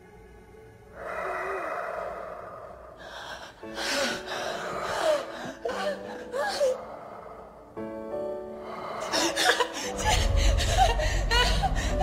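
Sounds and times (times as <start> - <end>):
soft film score: 0.0 - 12.0.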